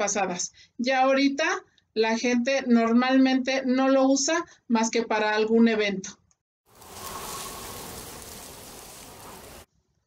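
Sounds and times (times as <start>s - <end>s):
rain-like hiss: 6.7s - 9.7s.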